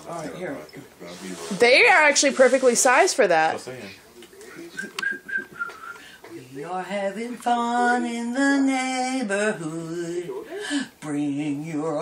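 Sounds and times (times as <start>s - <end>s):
faint murmuring voices: 0.0s - 8.0s.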